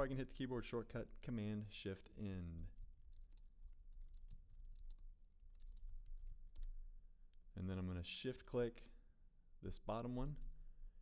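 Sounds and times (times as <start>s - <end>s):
faint keyboard typing: 2.4s - 7.4s, 10.0s - 10.6s.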